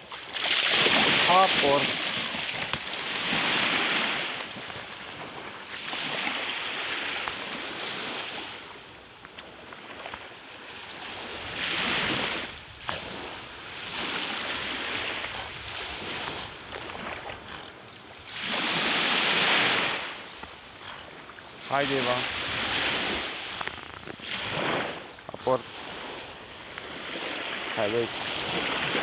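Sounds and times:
small waves washing ashore: 0:00.0 - 0:29.0
wind on microphone: 0:11.0 - 0:29.0.

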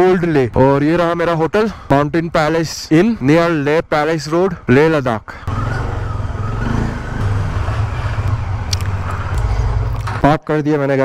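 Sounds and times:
motorcycle engine at low revs: 0:05.5 - 0:10.2.

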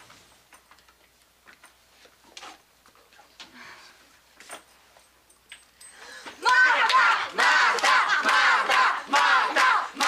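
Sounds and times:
group shouting and cheering: 0:06.4 - 0:10.0
hand claps: 0:06.8 - 0:10.0.

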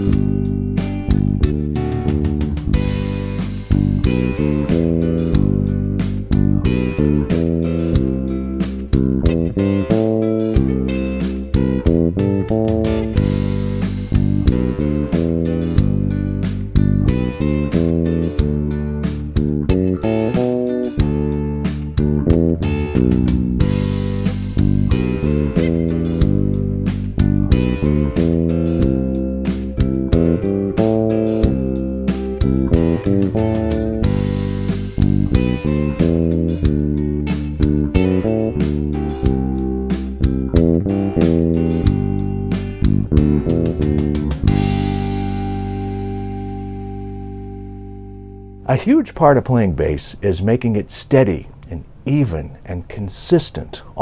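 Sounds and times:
electric bass guitar groove: 0:00.0 - 0:52.8.

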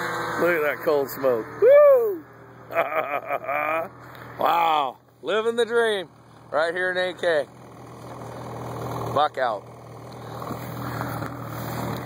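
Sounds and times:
snowmobile engine idling: 0:00.0 - 0:12.0.

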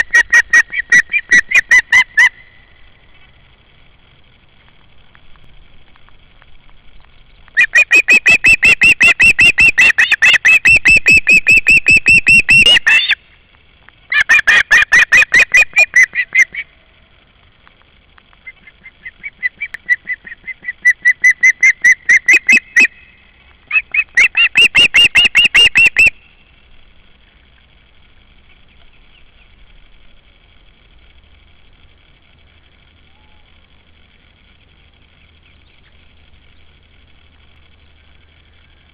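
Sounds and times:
osprey whistled chirps: 0:00.0 - 0:02.8, 0:07.6 - 0:13.2, 0:18.4 - 0:26.5.

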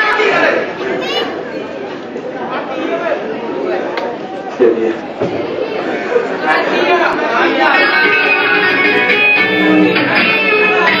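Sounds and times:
audience chatter: 0:00.0 - 0:11.0
electric guitar notes: 0:08.0 - 0:11.0.

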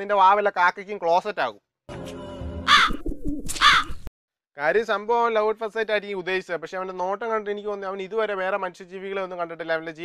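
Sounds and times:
crow cawing: 0:02.7 - 0:04.0.

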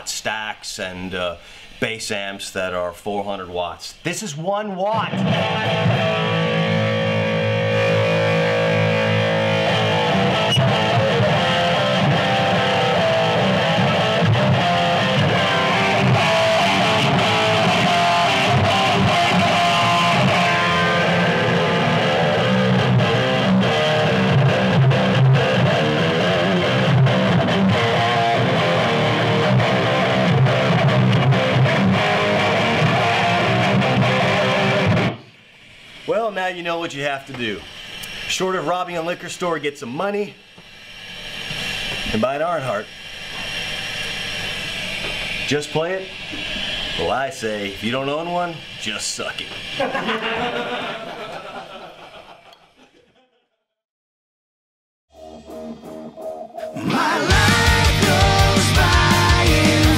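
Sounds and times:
electric guitar riffs: 0:04.7 - 0:35.5, 0:55.1 - 0:59.9.

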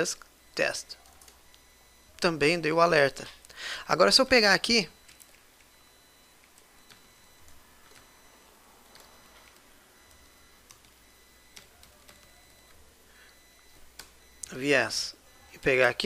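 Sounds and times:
computer keyboard typing: 0:00.9 - 0:01.7, 0:05.0 - 0:14.5.

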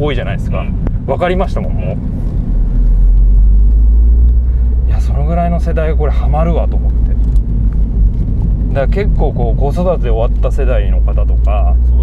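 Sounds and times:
car engine and road drone: 0:00.0 - 0:12.0.

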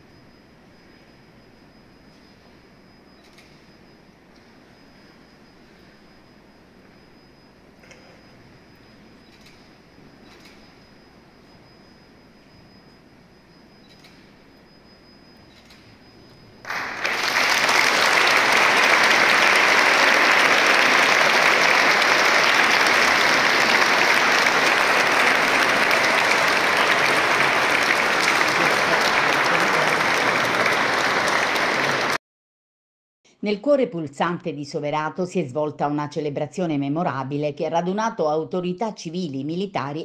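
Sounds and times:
congregation applauding: 0:16.6 - 0:32.2.

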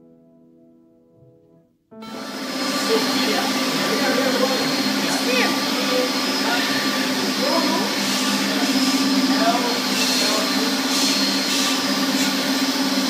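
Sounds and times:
woodworking machinery drone: 0:02.0 - 0:13.0.

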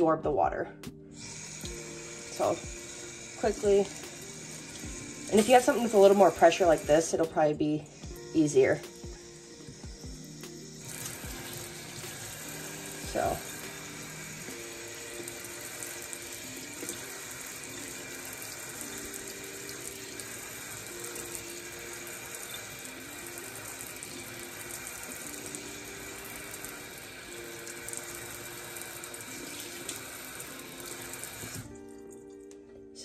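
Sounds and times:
faucet water spraying: 0:01.1 - 0:32.6.

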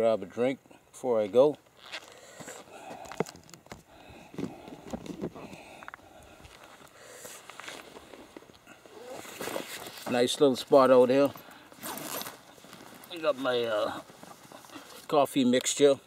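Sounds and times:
soft bag being picked up: 0:11.2 - 0:14.2
clothing rustling on microphone: 0:11.2 - 0:15.1.

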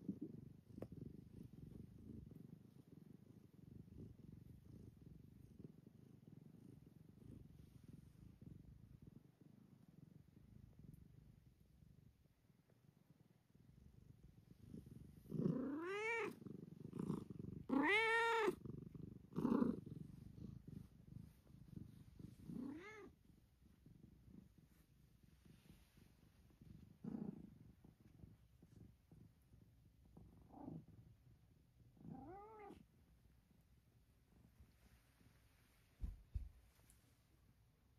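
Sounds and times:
cat purring: 0:00.0 - 0:37.9
cat meowing: 0:17.8 - 0:18.6.

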